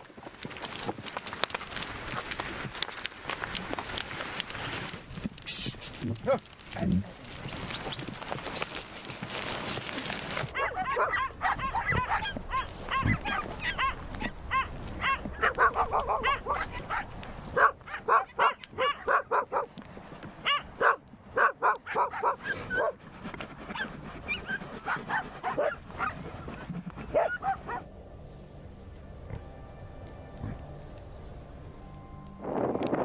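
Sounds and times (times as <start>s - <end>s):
dog barking and yipping: 6.2s - 6.9s, 10.5s - 19.7s, 20.4s - 23.0s, 23.7s - 26.3s, 27.0s - 27.9s.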